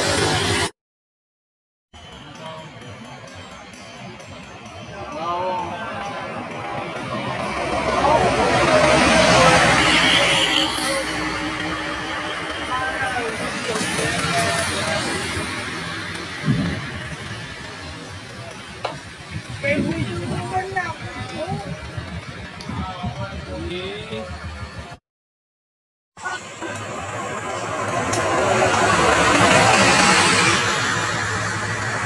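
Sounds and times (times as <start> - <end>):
music: 2.0 - 7.7
voices: 2.0 - 25.0
bus driving past: 5.7 - 20.5, 26.2 - 32.0.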